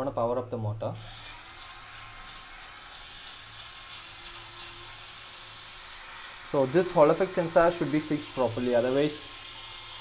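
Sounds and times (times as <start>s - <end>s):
small gear motor whirring: 1.0s - 10.0s.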